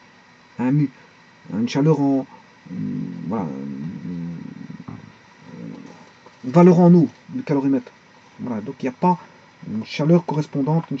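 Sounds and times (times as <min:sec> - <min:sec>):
man speaking: 0:00.6 - 0:11.0.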